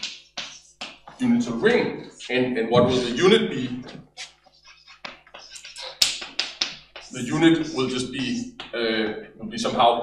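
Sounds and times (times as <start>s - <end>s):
chalk on blackboard: 0.0s - 1.2s, 3.9s - 8.6s.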